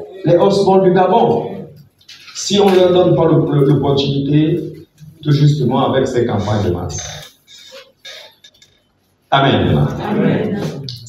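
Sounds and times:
man speaking over a microphone: 0:00.0 - 0:01.8, 0:02.4 - 0:08.5, 0:09.3 - 0:11.0.

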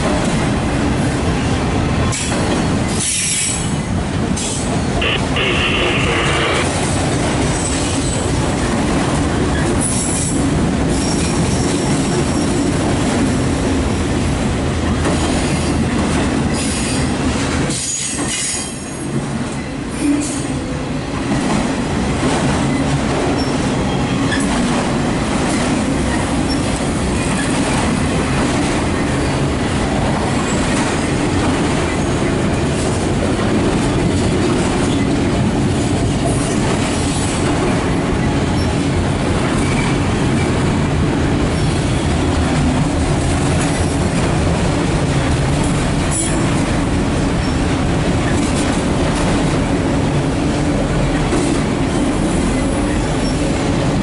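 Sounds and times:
steel wheels rumbling on rail: 0:00.0 - 0:54.0.

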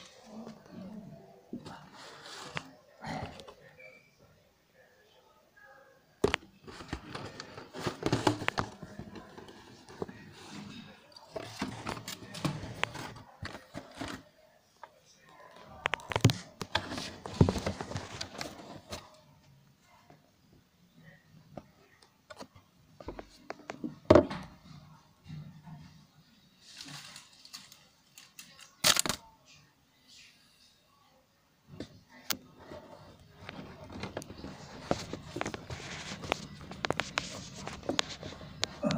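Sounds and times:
fabric rustling on microphone: 0:32.7 - 0:38.8.

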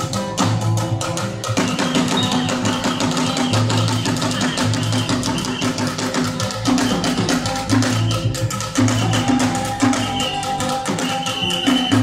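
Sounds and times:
hand drums playing fast rhythm: 0:00.0 - 0:12.0.

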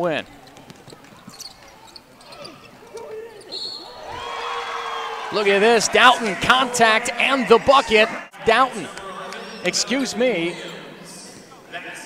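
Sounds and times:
faint players' voices: 0:00.0 - 0:12.0
referee's whistle: 0:03.4 - 0:04.0.

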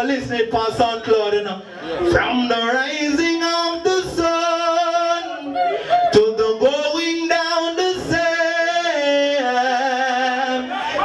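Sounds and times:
man singing into microphone: 0:02.1 - 0:11.0.

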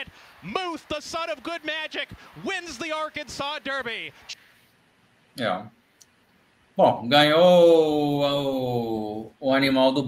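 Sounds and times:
race caller fast commentary: 0:00.0 - 0:04.2.

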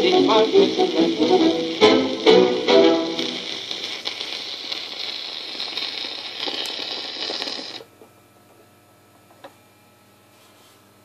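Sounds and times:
turntable mechanical clicking: 0:00.0 - 0:07.9
record surface hiss and crackles: 0:00.0 - 0:11.0.

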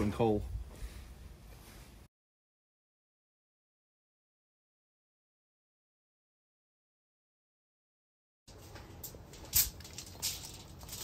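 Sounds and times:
aluminium foil crinkling: 0:08.5 - 0:11.0.

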